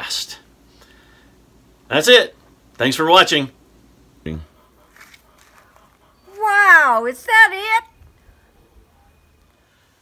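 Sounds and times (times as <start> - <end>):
woman calling out: 6.3 - 7.9.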